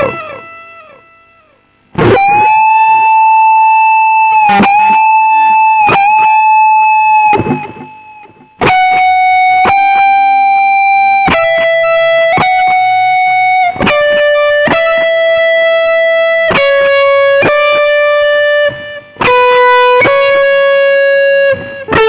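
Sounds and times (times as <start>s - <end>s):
electric guitar lead melody: 0.0s - 22.0s.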